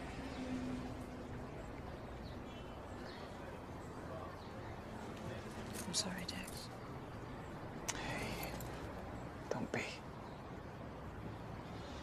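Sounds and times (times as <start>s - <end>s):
person whispering: 7.9s - 8.6s.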